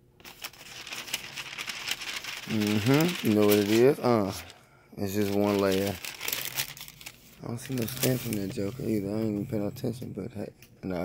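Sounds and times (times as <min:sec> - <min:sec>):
tissue paper crinkling: 0:00.2 - 0:09.4.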